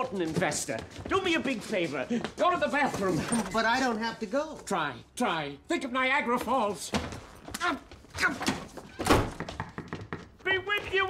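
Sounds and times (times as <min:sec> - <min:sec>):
door slamming shut: 0:08.2 - 0:09.6.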